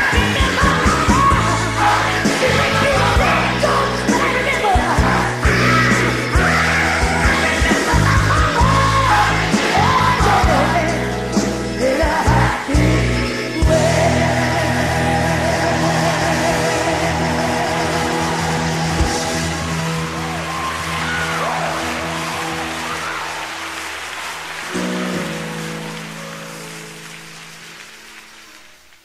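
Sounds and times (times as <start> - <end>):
solo voice singing: 0.0 - 19.3
choir and band chords: 0.0 - 26.0.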